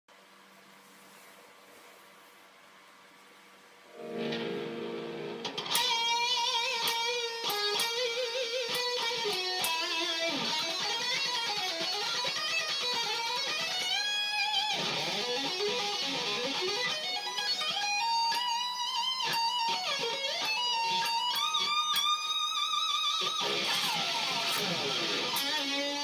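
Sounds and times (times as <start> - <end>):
distorted electric guitar solo: 3.9 - 26.0.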